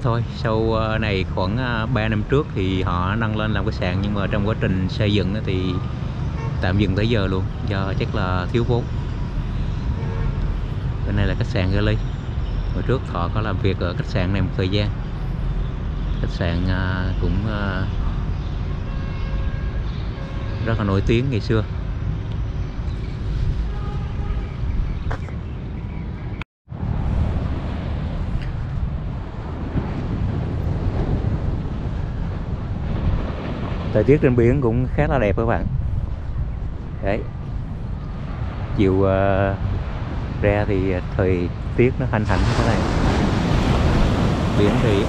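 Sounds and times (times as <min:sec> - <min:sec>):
urban background rumble: 0:00.0 - 0:45.0
wind buffeting microphone: 0:00.0 - 0:45.0
sea surf: 0:26.9 - 0:35.2, 0:38.4 - 0:45.0.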